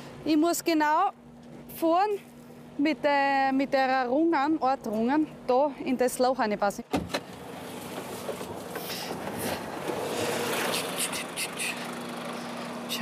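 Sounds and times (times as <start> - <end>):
diesel truck engine idling: 8.5 - 13.0.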